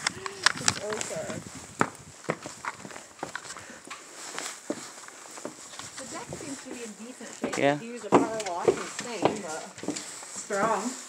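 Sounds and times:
footsteps on wooden stairs: 0.0s - 11.0s.

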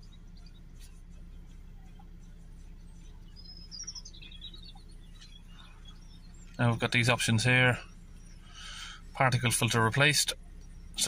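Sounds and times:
bird chirping: 0.0s - 11.0s
faint low hum: 0.0s - 11.0s.

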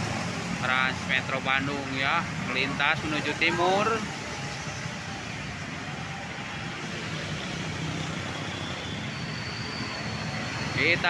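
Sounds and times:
motorcycles and cars passing: 0.0s - 11.0s.

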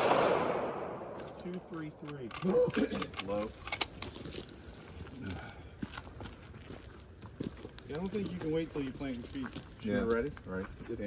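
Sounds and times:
footsteps on dirt and leaves: 3.9s - 11.0s.

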